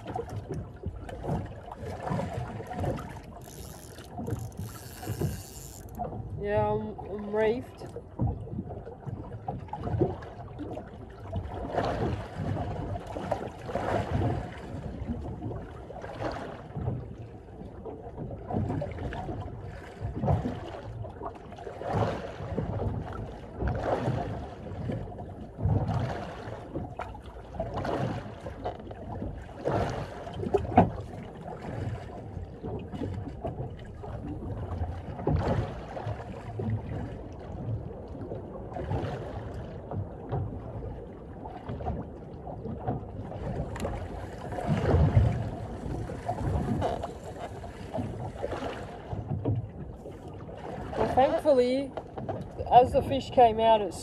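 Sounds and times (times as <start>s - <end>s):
low rumble of water: 0.0s - 54.0s
waves slapping boat hull: 0.0s - 54.0s
wind: 0.0s - 54.0s.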